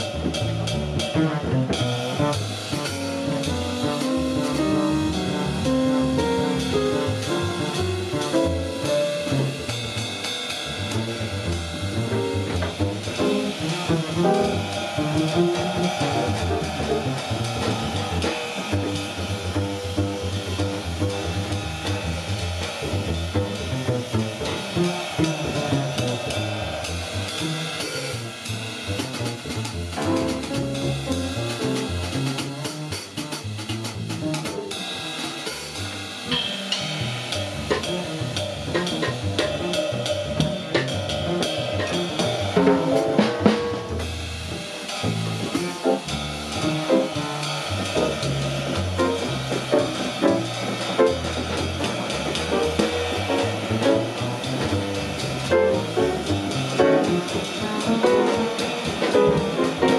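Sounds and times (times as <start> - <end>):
plucked upright bass: 0.0 - 34.7, 36.3 - 59.9
jazz drum kit: 0.0 - 59.9.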